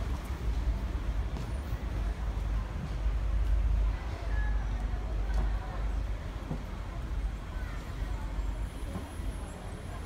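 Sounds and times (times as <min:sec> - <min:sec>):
faint voices: 0:01.6 - 0:10.0.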